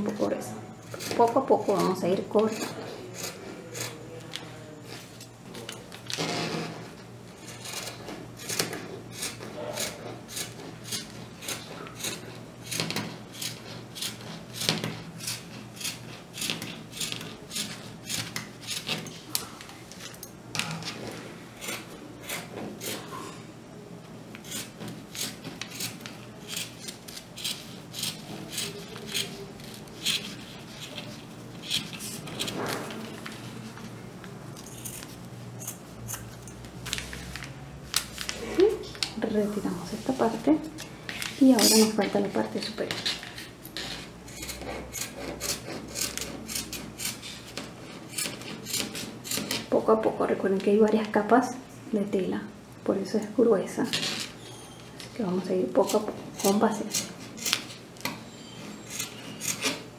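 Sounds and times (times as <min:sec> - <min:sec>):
scissors snipping through fabric: 0:24.4 - 0:32.6.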